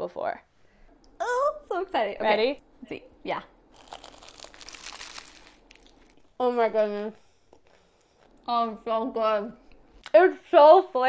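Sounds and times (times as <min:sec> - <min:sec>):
crisp pastry crunching when bitten: 0:03.7 - 0:06.2.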